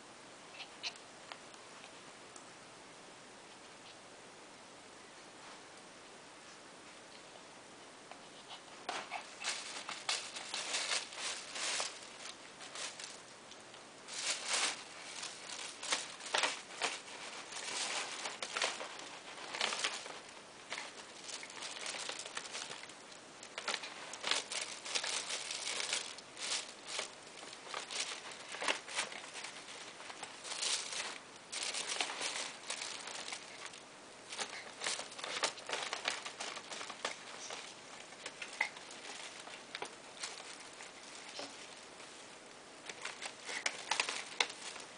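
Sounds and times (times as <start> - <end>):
plastic bags crinkling: 8.9 - 44.9.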